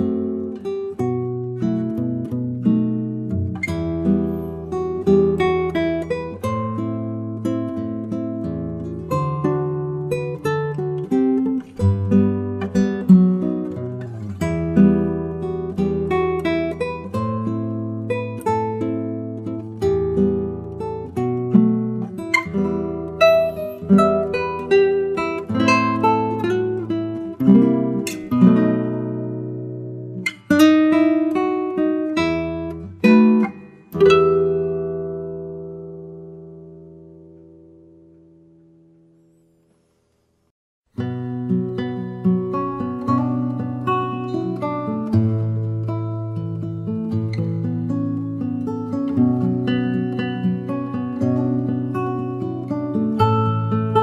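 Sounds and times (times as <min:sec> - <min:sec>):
acoustic guitar playing: 0:00.0 - 0:54.0.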